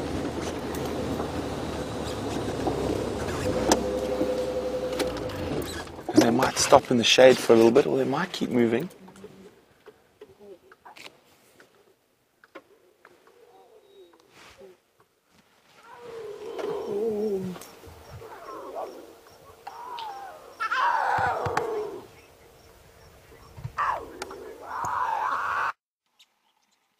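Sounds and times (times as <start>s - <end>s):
wavering animal calls: 15.8s - 22.4s, 23.3s - 25.8s.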